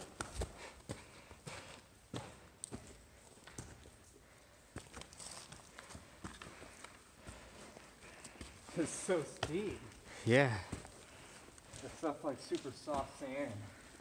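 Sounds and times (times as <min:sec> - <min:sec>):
footsteps on loose rock and sand: 0:04.7 - 0:14.0.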